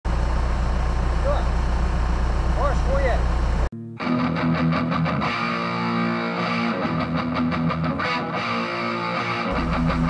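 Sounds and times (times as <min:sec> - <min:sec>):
car engine idling: 0:00.1 - 0:03.7, 0:09.5 - 0:10.0.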